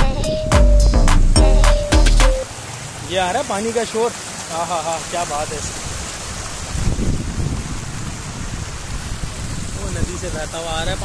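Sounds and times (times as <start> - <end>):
water rushing over rocks: 1.2 - 11.0.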